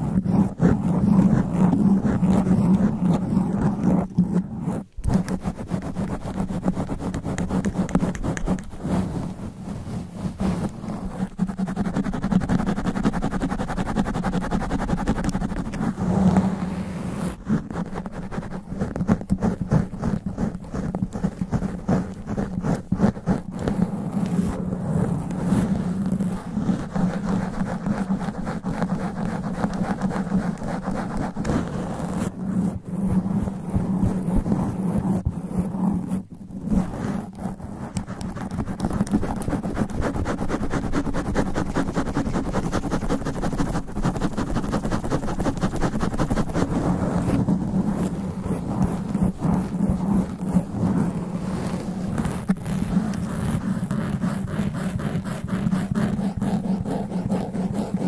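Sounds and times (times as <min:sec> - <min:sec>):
fingernails scratching microphone foam: 0:00.0 - 0:58.0.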